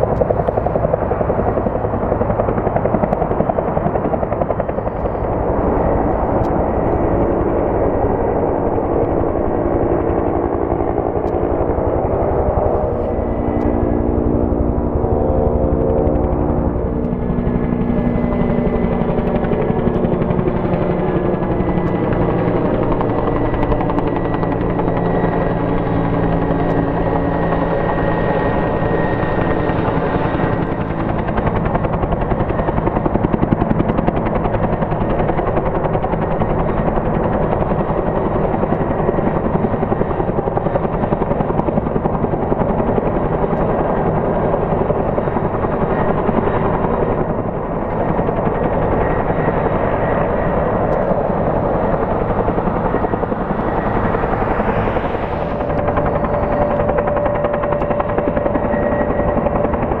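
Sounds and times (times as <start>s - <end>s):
helicopter rotor beating: 0.0s - 60.0s
turbine whine: 0.0s - 60.0s.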